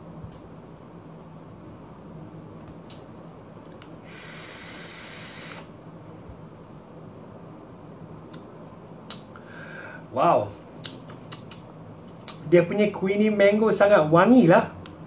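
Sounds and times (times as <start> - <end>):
steady low hum: 0.0 - 15.0
hiss of breath and vapour: 4.0 - 5.8.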